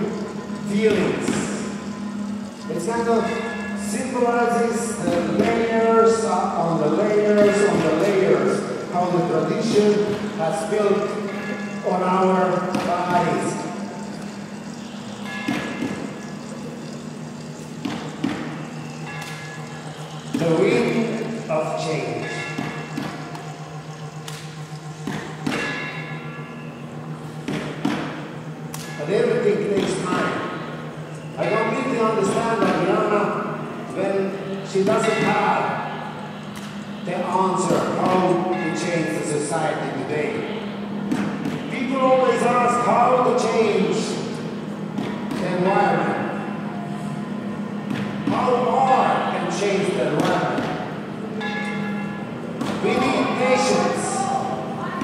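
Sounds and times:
ringing bell-like tone: 0.0s - 27.4s, 28.4s - 29.7s, 34.2s - 40.9s, 51.4s - 55.0s
steady low hum: 0.0s - 55.0s.

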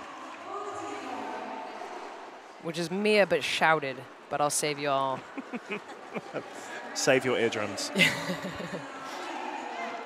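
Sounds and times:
crowd noise in a sports hall: 0.0s - 10.0s.

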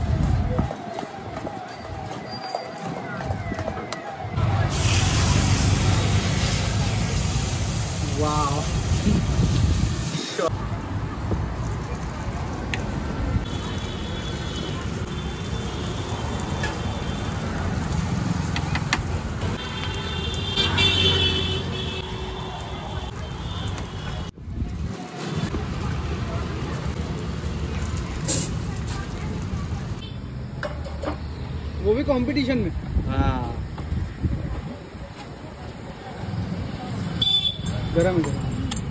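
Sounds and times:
street traffic passing: 0.0s - 38.9s.

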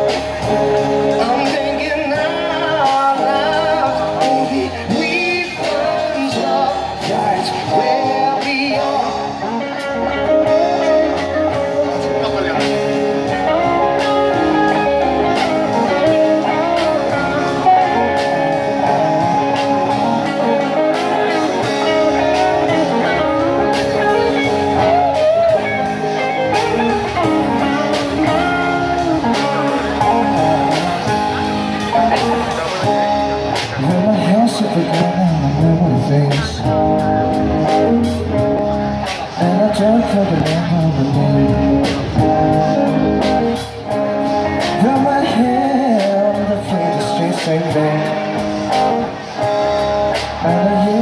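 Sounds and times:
drum kit with cymbals: 0.0s - 51.0s
electric guitars: 0.0s - 51.0s.

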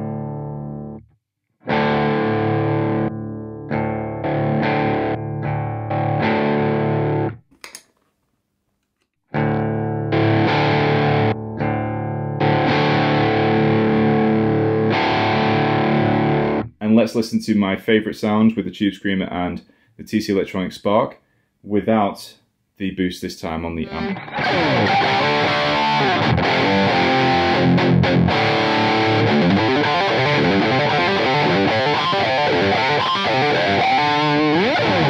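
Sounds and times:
electric guitar strumming: 0.0s - 1.0s, 1.6s - 7.4s, 9.3s - 16.7s, 23.8s - 35.0s.

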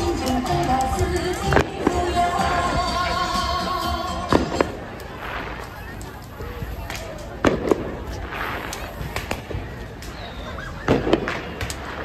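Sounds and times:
background music: 0.0s - 5.4s
street crowd chatter: 0.0s - 12.0s.

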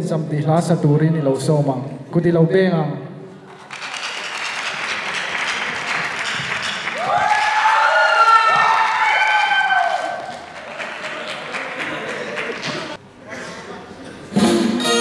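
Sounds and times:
audience applauding: 3.5s - 13.0s
audience cheering: 5.1s - 13.0s.

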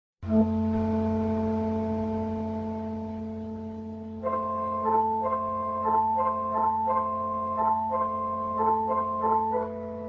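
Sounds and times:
low bass note: 0.2s - 6.0s
electronic keyboard chord: 0.2s - 10.0s.

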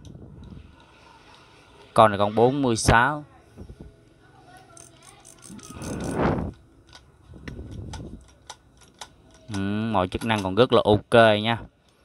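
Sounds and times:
fishing reel clicks and rattles: 4.7s - 6.2s
fishing reel whirr: 4.8s - 6.4s.

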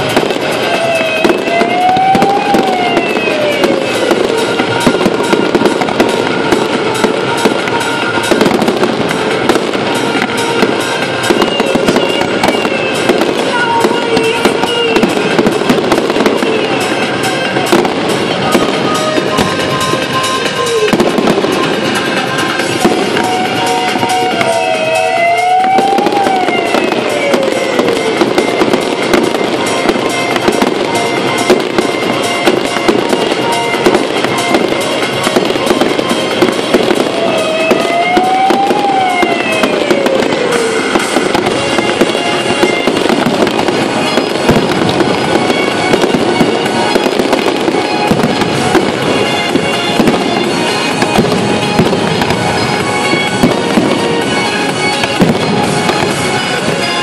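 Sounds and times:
fireworks bursting and crackling: 0.0s - 57.0s
music playing: 0.0s - 57.0s.

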